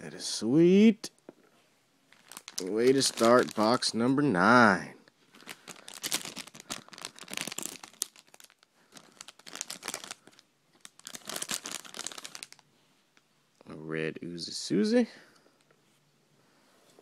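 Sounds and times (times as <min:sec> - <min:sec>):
plastic wrapper crinkling and tearing: 0:02.1 - 0:04.0, 0:05.3 - 0:12.7.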